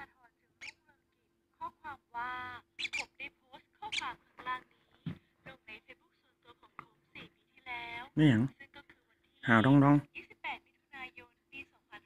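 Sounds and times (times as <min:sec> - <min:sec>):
lovebird calling: 0:02.8 - 0:03.2, 0:03.9 - 0:04.2.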